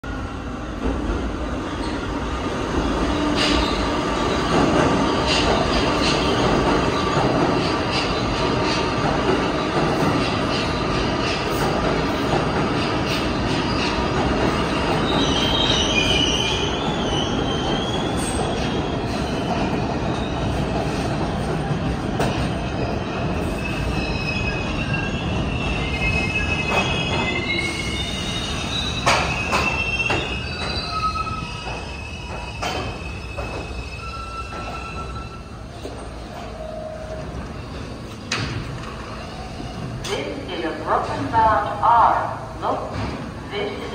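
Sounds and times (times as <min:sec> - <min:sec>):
train wheels rumbling on rails: 0:00.0 - 0:43.9
high-pitched wheel squeal: 0:23.6 - 0:35.4.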